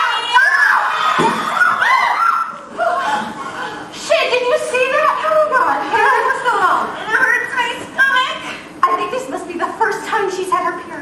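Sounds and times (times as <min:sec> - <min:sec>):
young women shouting: 0:00.0 - 0:03.1.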